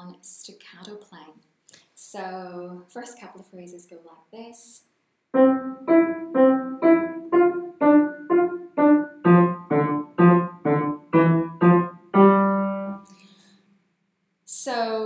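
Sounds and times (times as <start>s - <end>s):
staccato piano chords: 5.4s - 13.0s.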